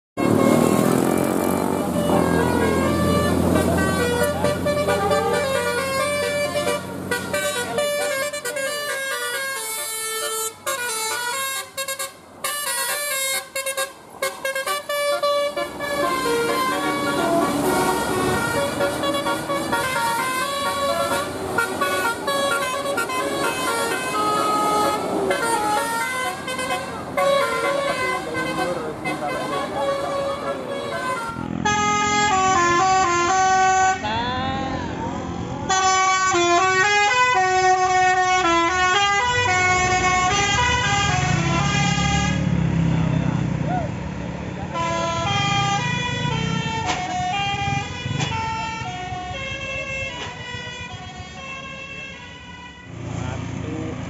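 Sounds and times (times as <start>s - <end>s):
bus air horn playing a tune: 0.2s - 34.6s, 35.6s - 42.5s, 44.7s - 52.9s
bus engine running: 0.2s - 49.9s.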